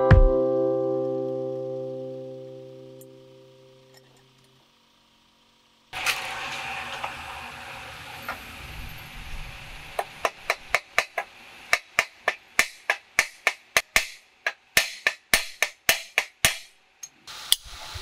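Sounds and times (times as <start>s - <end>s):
hammer tapping on metal: 10.0s - 16.8s.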